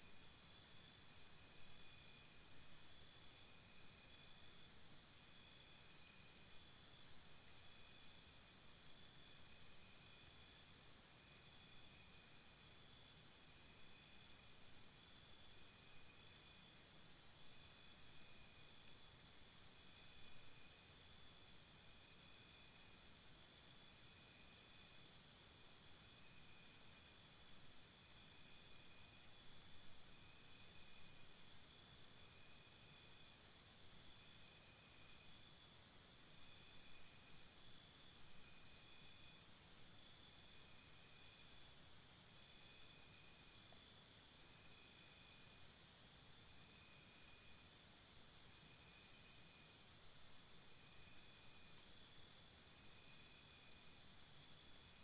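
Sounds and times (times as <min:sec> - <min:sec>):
faint high insect trill: 0:00.0 - 0:55.0.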